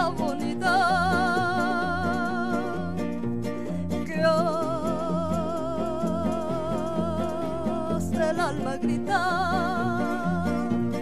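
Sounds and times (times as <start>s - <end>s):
woman singing with vibrato: 0.0s - 3.2s, 4.0s - 11.0s
acoustic guitars strumming: 0.0s - 11.0s.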